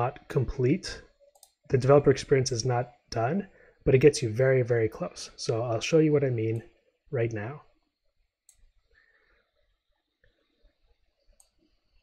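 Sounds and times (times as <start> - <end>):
computer mouse clicks: 1.1 - 1.6, 8.4 - 8.8, 10.2 - 12.0.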